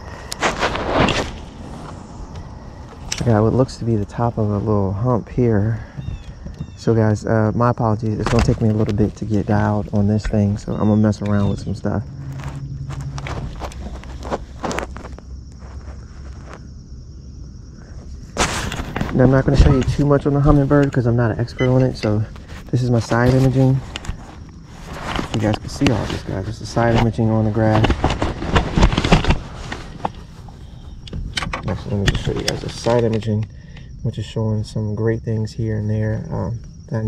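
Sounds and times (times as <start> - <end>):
faint steady hum: 0.0 - 37.0
clothing rustling on microphone: 0.3 - 4.7, 8.2 - 16.7, 17.9 - 30.8
knocks and clicks of handling gear: 2.4 - 3.4, 6.0 - 7.2, 8.0 - 11.6, 12.4 - 15.2, 18.4 - 33.9.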